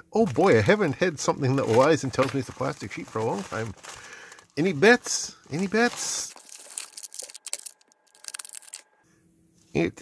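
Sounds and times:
plastic packaging crinkling: 0.2 - 9.0.

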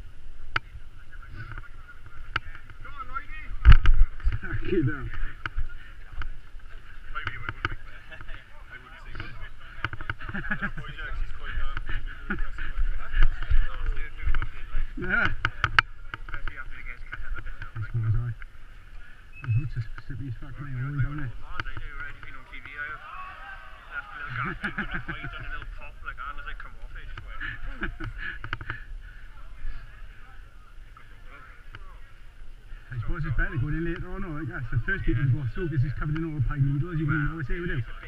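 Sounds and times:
people talking: 0.6 - 38.0.

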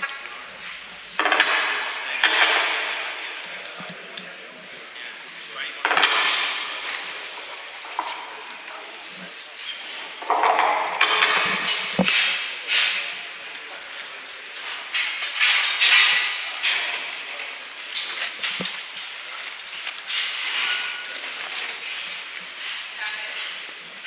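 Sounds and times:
indistinct voices talking in hall: 0.0 - 24.0.

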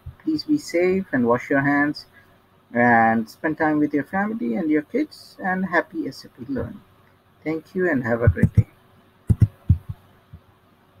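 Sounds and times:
keyboard and mouse knocks: 9.3 - 10.0.

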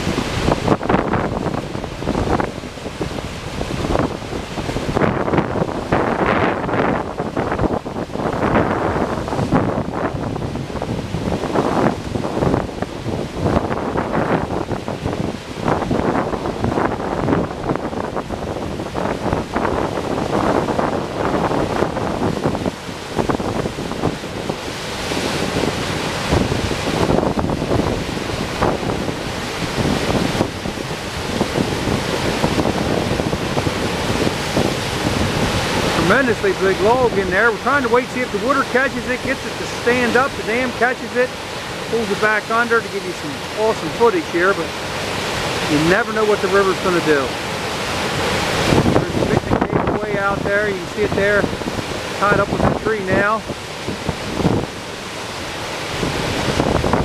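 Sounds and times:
river water rushing over dam: 0.0 - 57.0
wind buffeting microphone: 0.0 - 57.0.

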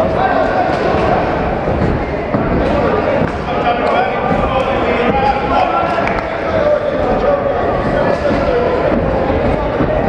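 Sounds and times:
voices shouting in a hall: 0.0 - 10.0.

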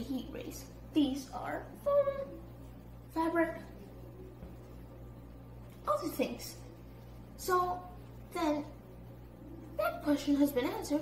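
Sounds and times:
boy speaking: 0.0 - 2.5, 3.1 - 3.8, 5.8 - 6.7, 7.4 - 8.8, 9.8 - 11.0
low hum of room noise: 0.0 - 11.0.

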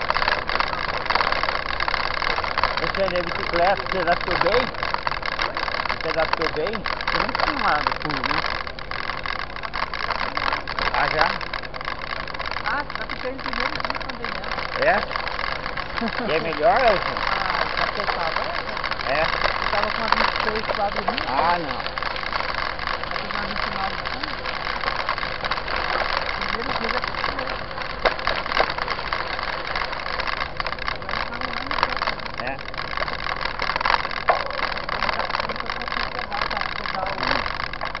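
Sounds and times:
bike tyres rattling on dirt: 0.0 - 38.0
sharp clicks and knocks: 0.0 - 38.0
faint voices: 2.6 - 38.0
person speaking: 2.8 - 4.8, 5.9 - 8.5, 12.6 - 29.0, 34.5 - 37.6.

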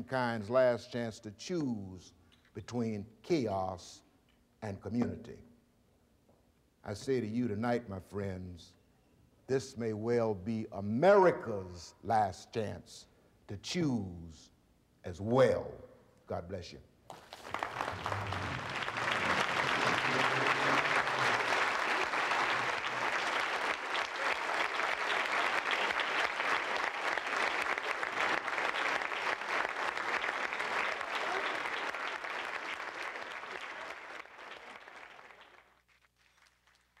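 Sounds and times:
audience applauding: 17.1 - 37.0.

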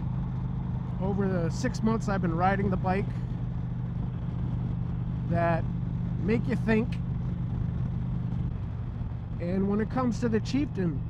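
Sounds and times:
motorcycle engine cruising: 0.0 - 11.0
wind and road noise: 0.0 - 11.0.

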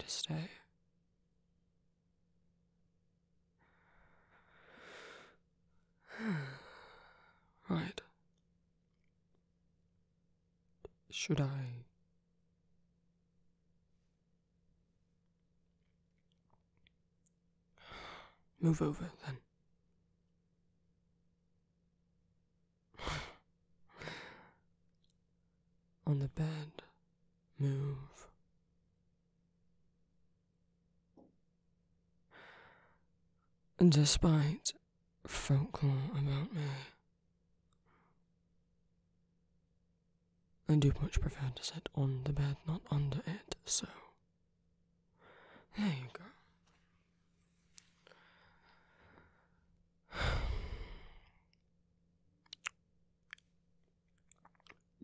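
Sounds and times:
man breathing: 48.0 - 51.3.

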